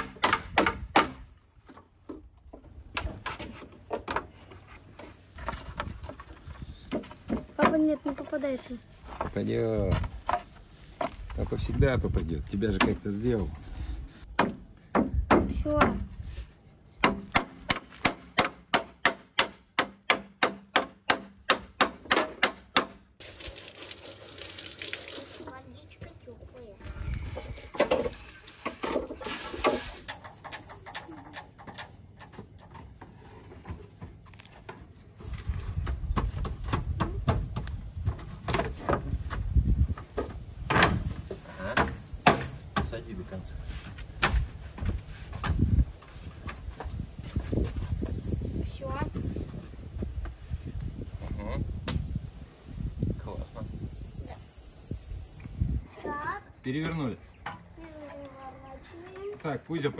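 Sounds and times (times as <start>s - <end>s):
evenly spaced knocks: 17.0s - 23.0s.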